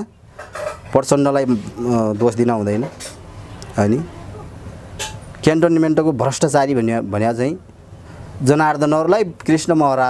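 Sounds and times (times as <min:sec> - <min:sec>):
man speaking: 0:01.0 - 0:03.0, 0:03.6 - 0:04.5, 0:05.4 - 0:07.6.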